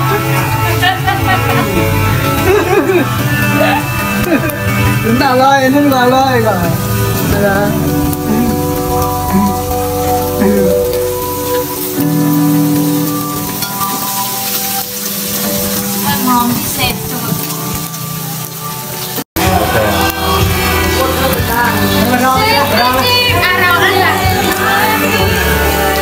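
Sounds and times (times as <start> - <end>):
background music with held notes: 0.0 - 26.0
meat sizzling on a grill pan: 0.2 - 26.0.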